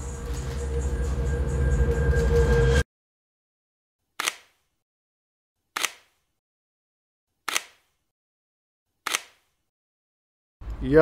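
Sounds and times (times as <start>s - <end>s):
camera shutter clicks: 4.2s - 4.6s, 5.8s - 6.1s, 7.5s - 7.8s, 9.1s - 9.4s.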